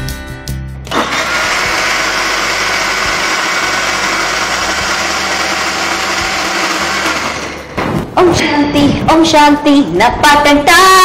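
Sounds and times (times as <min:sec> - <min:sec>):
electric mixer grinder running: 0:00.9 - 0:07.8.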